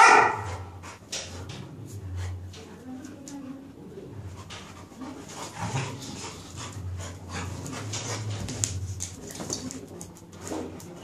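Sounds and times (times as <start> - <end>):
dogs panting: 0.3 - 2.8, 4.0 - 10.0
dogs scuffling: 4.2 - 11.0.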